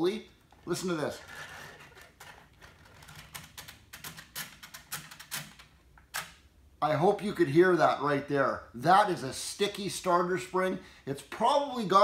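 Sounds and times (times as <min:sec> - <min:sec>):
pull rope rustling: 0:00.5 - 0:05.6.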